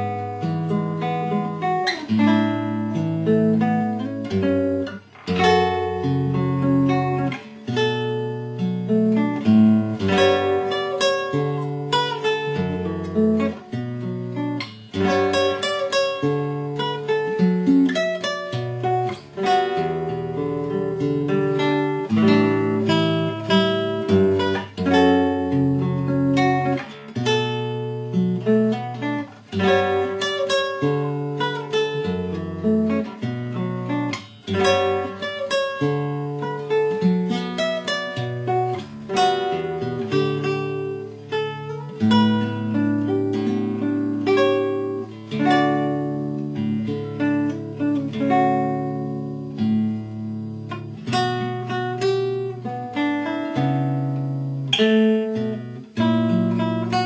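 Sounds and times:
classical guitar fingerstyle: 0.0s - 57.0s.

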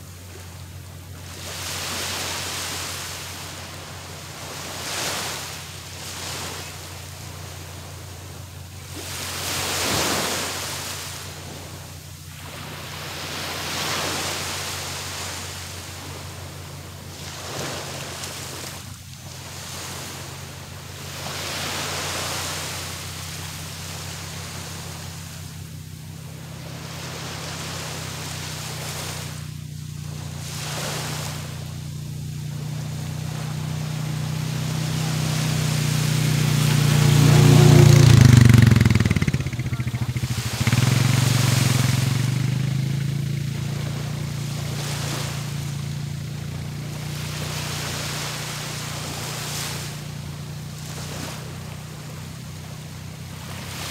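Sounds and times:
engine hum passing by: 0.0s - 53.9s
small waves washing onto shore: 0.0s - 53.9s.

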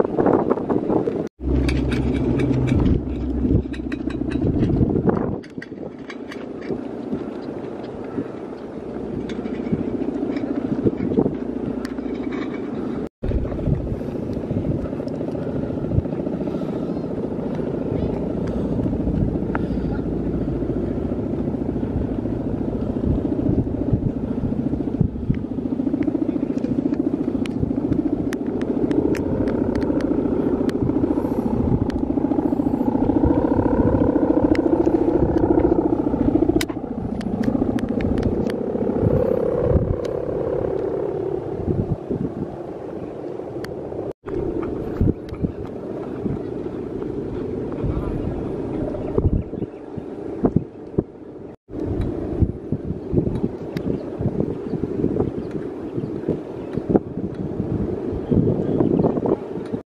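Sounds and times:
kite hummer droning in wind: 0.0s - 59.8s.

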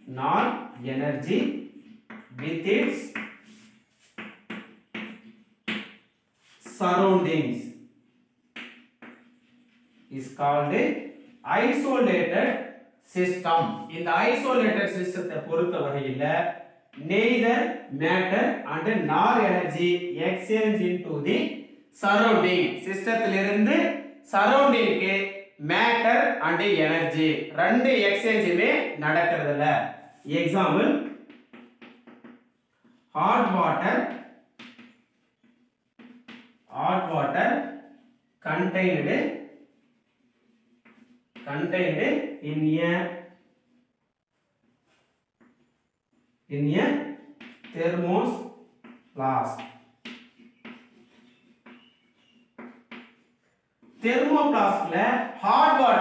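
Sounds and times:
man speaking: 0.0s - 1.5s, 2.4s - 3.2s, 6.6s - 7.7s, 10.1s - 10.9s, 11.5s - 16.4s, 17.0s - 31.1s, 33.2s - 34.2s, 36.7s - 37.6s, 38.4s - 39.3s, 41.4s - 43.1s, 46.5s - 47.0s, 47.7s - 48.4s, 49.2s - 49.7s, 54.0s - 56.0s
chalk scraping on blackboard: 2.8s - 6.8s, 8.6s - 10.3s, 30.0s - 30.3s, 31.0s - 33.2s, 34.6s - 36.7s, 39.5s - 41.5s, 44.6s - 46.5s, 48.6s - 54.9s.

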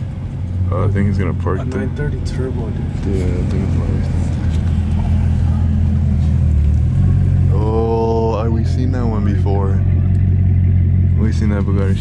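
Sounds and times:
car engine and road drone: 0.0s - 12.0s
voices: 0.0s - 12.0s.

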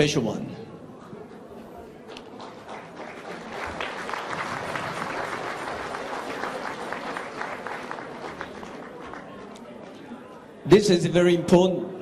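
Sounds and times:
audience applauding: 2.0s - 10.0s.

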